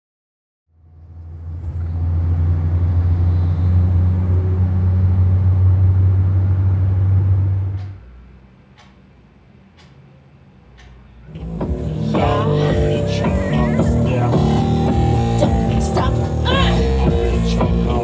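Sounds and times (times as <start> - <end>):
van engine rumble and road noise: 0.7 - 18.0.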